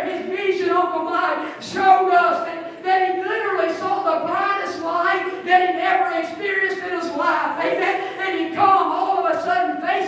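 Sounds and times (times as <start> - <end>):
woman preaching into microphone: 0.0 - 10.0.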